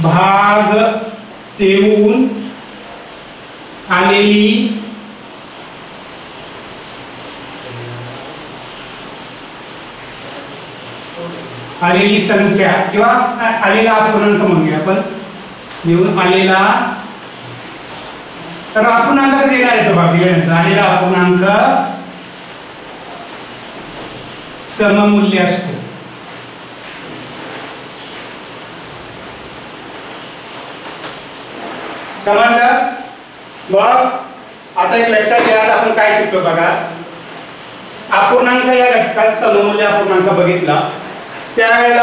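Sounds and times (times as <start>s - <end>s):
steady background hiss: 0.0s - 42.0s.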